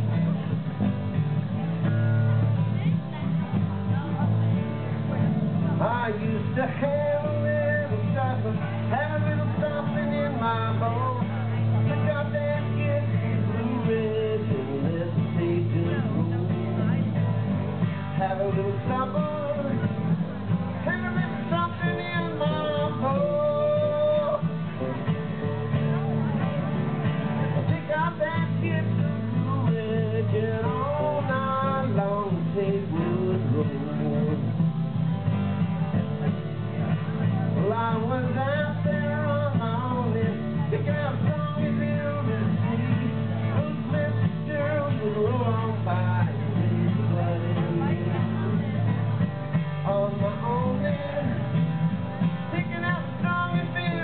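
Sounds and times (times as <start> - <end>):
acoustic guitar: 0.0 - 54.0
electric bass: 0.0 - 54.0
man singing: 5.2 - 26.2, 27.2 - 34.8, 37.0 - 54.0.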